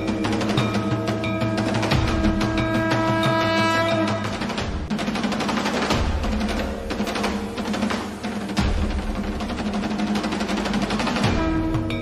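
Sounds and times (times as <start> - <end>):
fast drum roll: 0.0 - 12.0.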